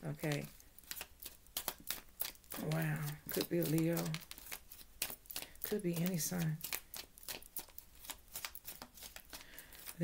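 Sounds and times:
cards shuffled by hand: 0.1 - 10.0.

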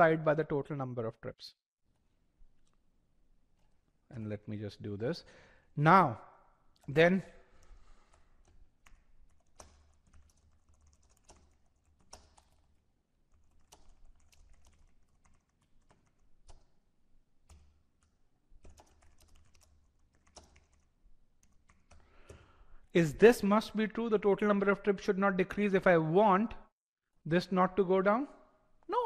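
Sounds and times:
faint typing on keyboard: 6.7 - 22.9.

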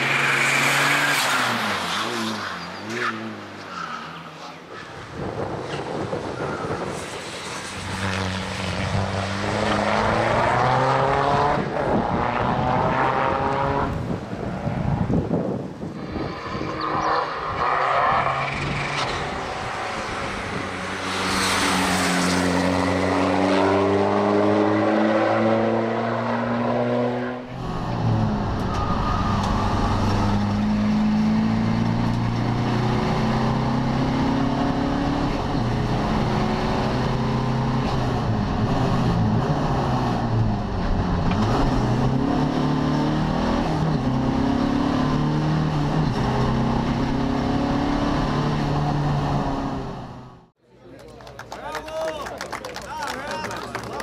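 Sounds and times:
race car accelerating past: 6.7 - 13.9, 16.0 - 50.0.

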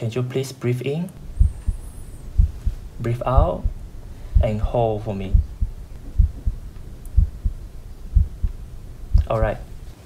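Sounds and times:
heartbeat through stethoscope: 1.2 - 9.9.

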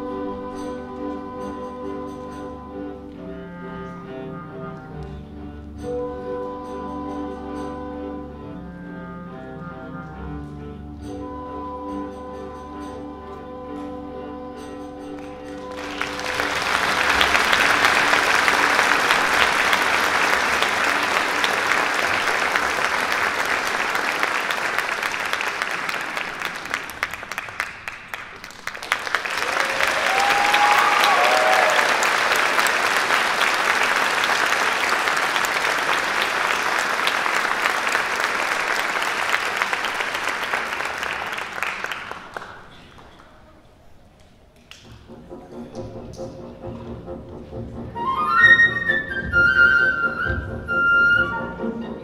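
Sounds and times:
audience applauding: 15.2 - 43.7
crowd cheering: 15.6 - 42.9.

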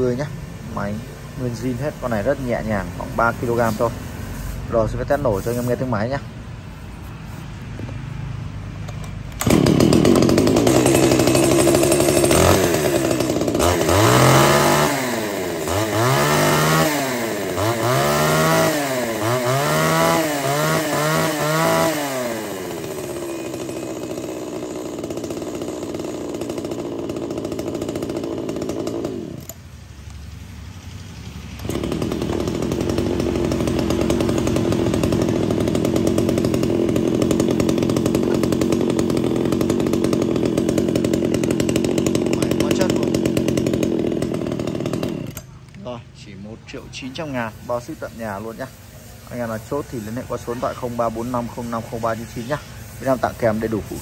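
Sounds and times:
chainsaw engine revving: 0.0 - 6.3, 8.8 - 29.7, 31.3 - 45.8, 46.7 - 54.0.

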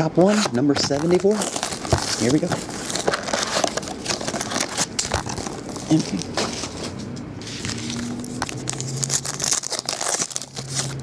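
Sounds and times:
plastic shrink wrap crinkling: 0.3 - 6.8, 7.5 - 11.0.

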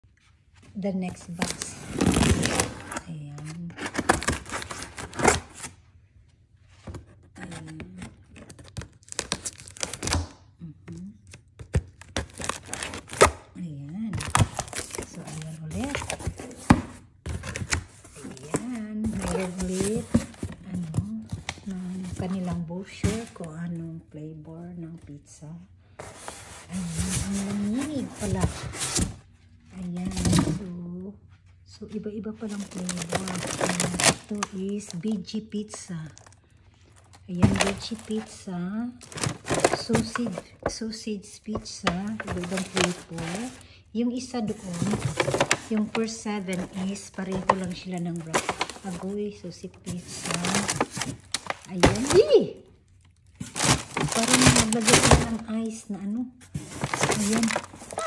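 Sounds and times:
person speaking: 15.0 - 16.6, 18.1 - 25.7, 57.0 - 58.0.

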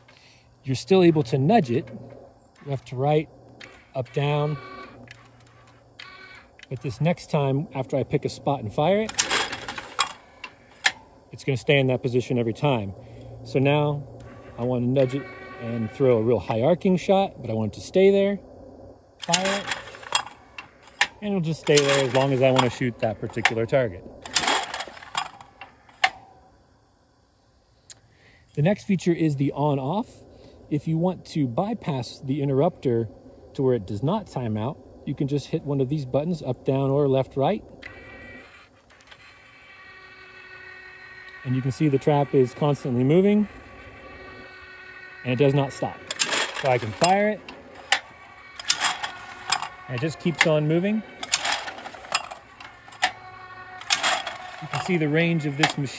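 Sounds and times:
faint mechanical whir: 0.0 - 55.9
trap mechanical clicks: 9.0 - 11.1, 19.2 - 26.3, 37.8 - 55.9.

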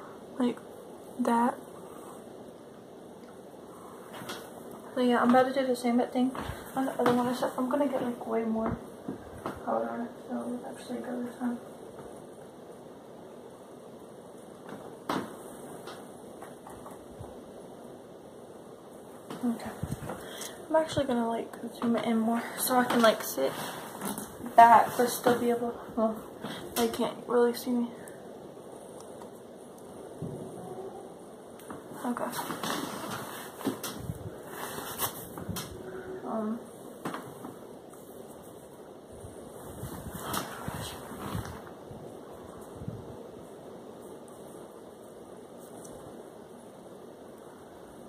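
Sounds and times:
steady background hiss: 0.0 - 48.0.

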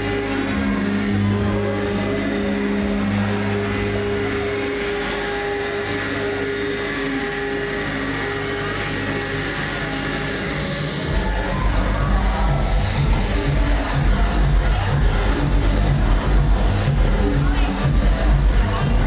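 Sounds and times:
loud dance music: 0.0 - 19.0.

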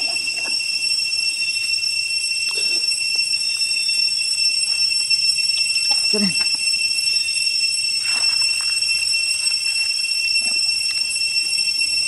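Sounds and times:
cicadas droning: 0.0 - 12.0.

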